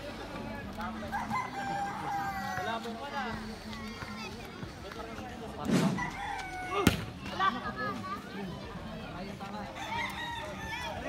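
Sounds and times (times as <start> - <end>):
crowd voices: 0.0 - 11.0
volleyball being struck: 6.8 - 7.1.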